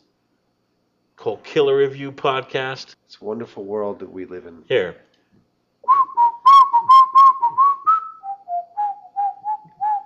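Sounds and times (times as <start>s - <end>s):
man whistling a tune: 5.8s - 10.0s.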